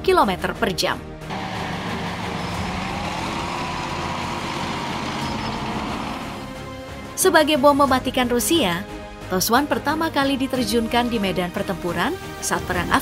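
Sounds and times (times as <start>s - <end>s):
background music: 0.0s - 13.0s
heavy vehicle engine running: 1.3s - 7.0s.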